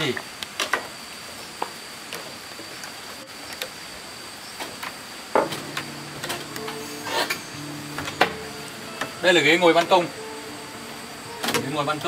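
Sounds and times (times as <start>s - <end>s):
steady hum shifting pitch: 5.4s - 12.0s.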